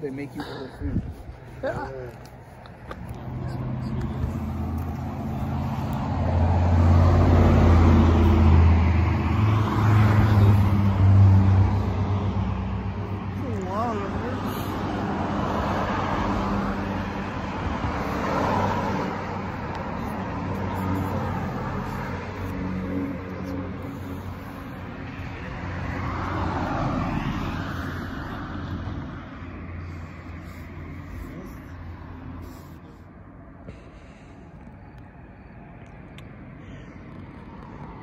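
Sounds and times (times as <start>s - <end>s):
cars passing: 0.0s - 38.0s.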